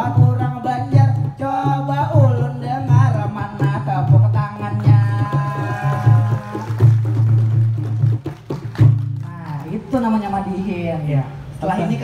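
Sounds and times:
person singing: 0.0 - 6.9
hand-struck frame drums: 0.0 - 9.8.

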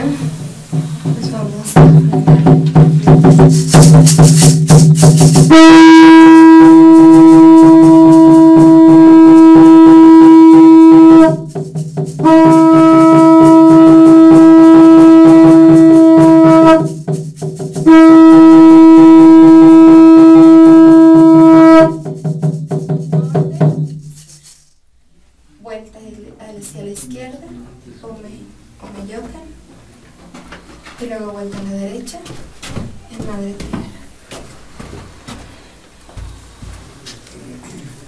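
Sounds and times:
conch shell trumpet blasts: 5.4 - 11.5, 12.2 - 17.0, 17.8 - 22.0.

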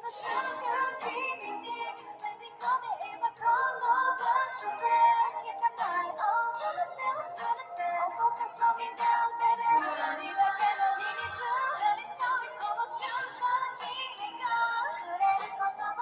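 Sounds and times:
pop backing track: 0.0 - 16.0
women singing pop song: 0.0 - 16.0.

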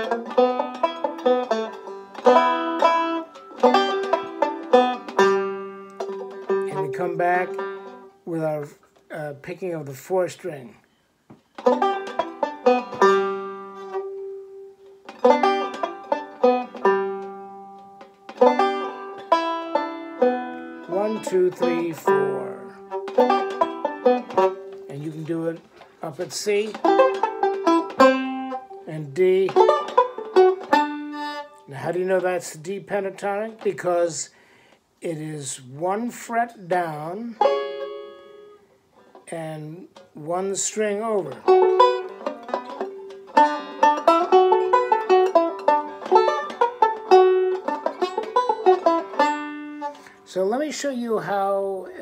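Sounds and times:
banjo picking notes: 0.0 - 34.4, 35.0 - 52.0.

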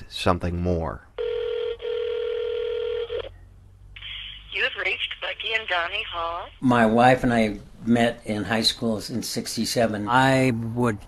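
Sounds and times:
telephone ringing tone: 1.2 - 3.4.

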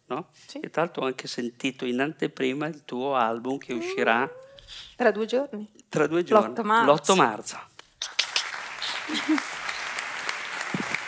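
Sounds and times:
audience applause: 8.1 - 11.0.

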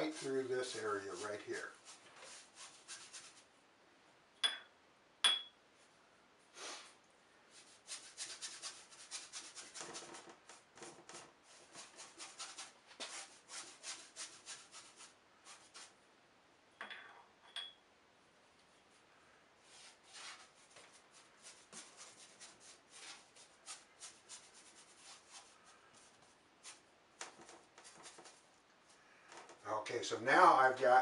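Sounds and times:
paintbrush scrubbing on canvas: 0.0 - 3.5, 7.5 - 16.0, 19.6 - 28.5
sharp ringing taps: 4.4 - 5.6, 16.8 - 17.8.

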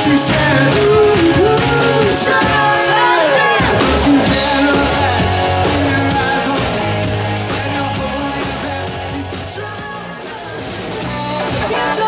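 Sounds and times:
live rock band with vocals: 0.0 - 12.0.

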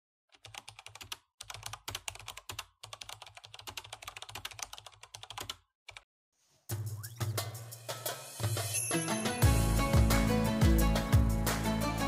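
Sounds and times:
computer keyboard typing: 0.3 - 6.0.

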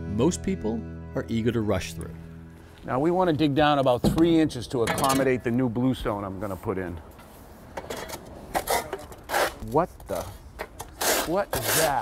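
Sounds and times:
spades scraping in sand: 10.9 - 12.0.

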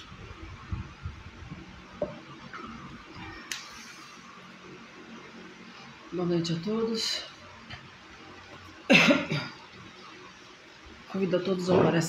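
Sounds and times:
man coughing: 8.9 - 9.6.

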